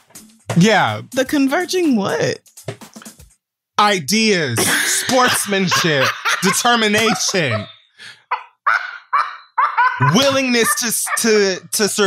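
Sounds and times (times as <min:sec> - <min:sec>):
person laughing: 0:04.4 - 0:12.0.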